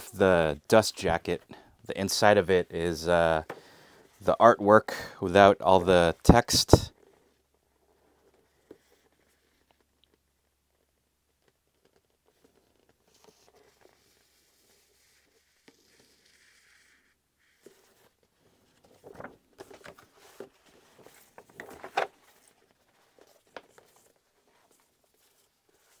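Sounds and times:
book paper rustling: 11.4s - 26.0s.

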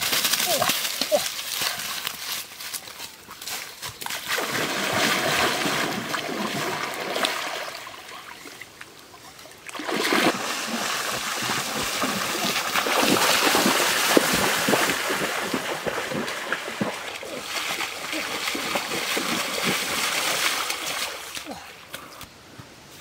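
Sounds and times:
feet splashing through water: 0.2s - 8.8s, 9.4s - 21.9s.

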